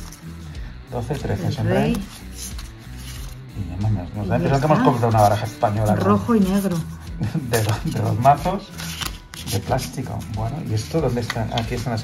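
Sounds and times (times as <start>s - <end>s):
background music: 0.0s - 12.0s
plastic cards clicking and rubbing: 1.0s - 3.4s, 4.9s - 12.0s.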